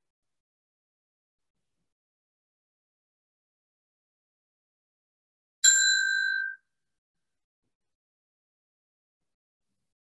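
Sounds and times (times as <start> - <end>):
bell ding: 5.6 - 6.6.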